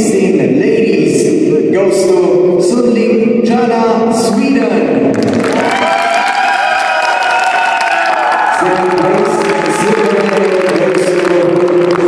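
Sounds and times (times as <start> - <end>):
audience applause: 5.2 - 12.0.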